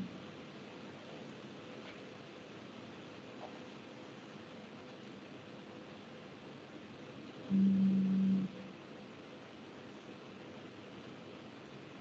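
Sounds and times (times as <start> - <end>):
low steady buzz: 0.0 - 12.0
phone line hiss and hum: 0.0 - 12.0.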